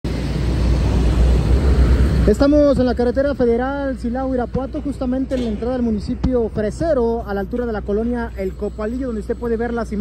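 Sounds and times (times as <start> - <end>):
highway traffic rumble and hiss: 0.0 - 10.0.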